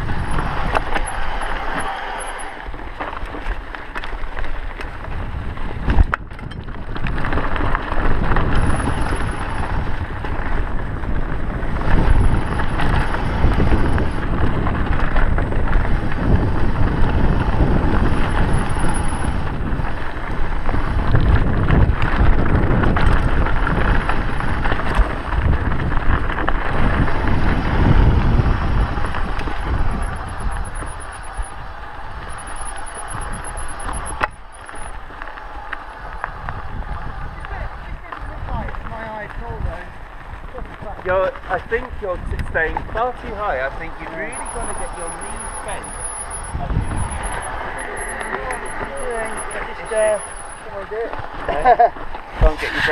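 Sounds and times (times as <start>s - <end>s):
bike rattling and knocking: 0.0s - 52.3s
tyres running over dirt: 0.0s - 52.9s
wind buffeting microphone: 0.0s - 52.9s.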